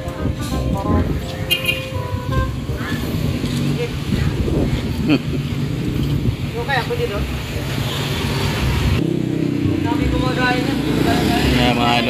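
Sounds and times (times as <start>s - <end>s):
motorcycle engine passing: 1.0s - 12.0s
people's voices: 9.6s - 12.0s.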